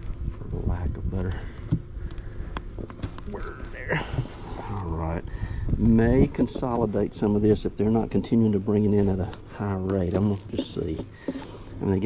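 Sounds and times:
man murmuring: 3.3 - 5.3.

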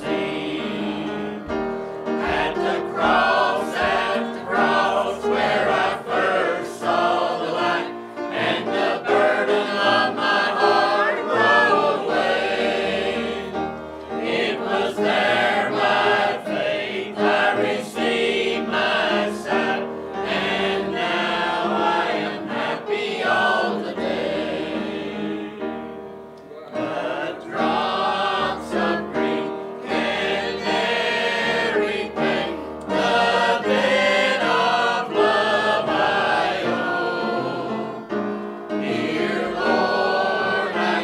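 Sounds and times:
mixed choir singing a hymn: 0.0 - 41.0.

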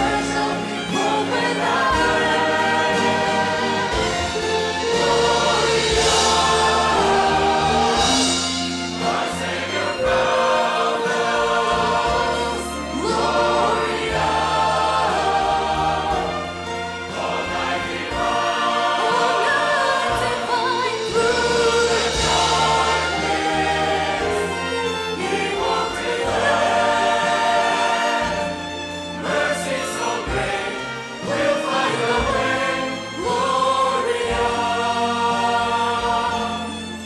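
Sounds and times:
choir singing with orchestra: 0.0 - 37.0.

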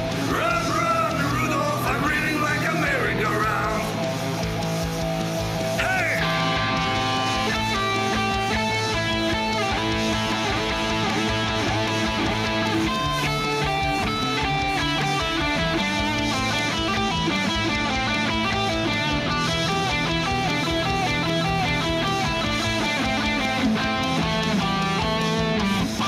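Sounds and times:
bass and drums backing: 0.0 - 26.0
electric guitar solo: 0.0 - 26.0.

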